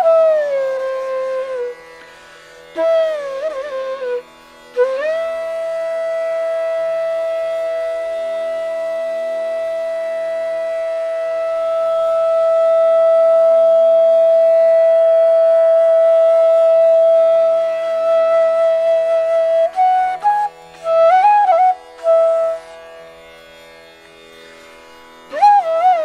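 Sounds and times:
bamboo flute long held note: 0.0 - 23.2, 25.3 - 26.0.

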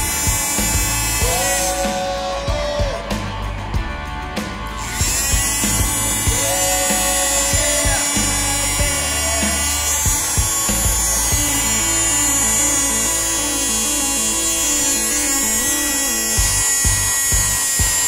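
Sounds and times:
background music: 0.0 - 18.0
toy motor high whine: 0.0 - 18.0.

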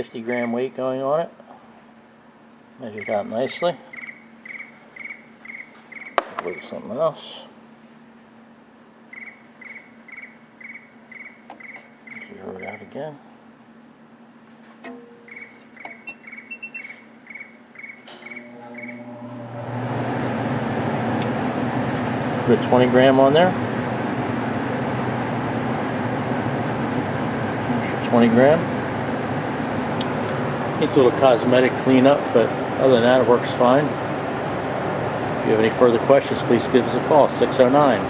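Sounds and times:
faint steady hum: 0.0 - 38.0
short high chirps: 15.2 - 19.0.

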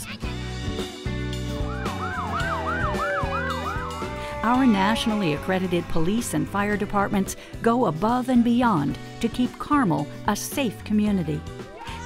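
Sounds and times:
background music: 0.0 - 12.0
police siren yelp: 1.6 - 6.4.

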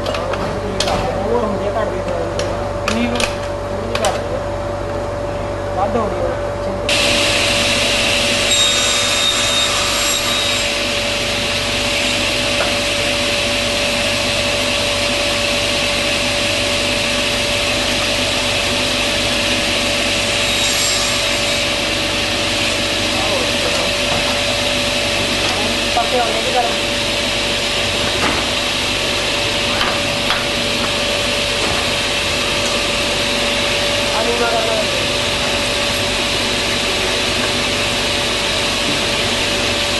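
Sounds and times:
table saw blade whining: 6.9 - 39.9.

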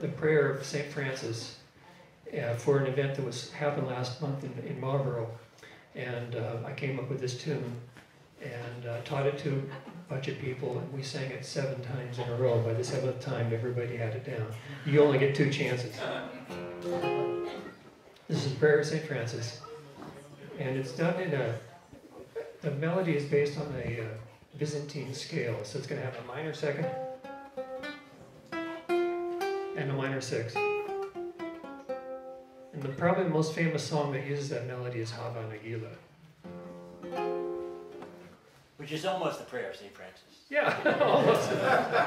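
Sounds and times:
classical guitar chord strummed: 16.4 - 17.8, 26.8 - 33.0, 36.4 - 38.3.

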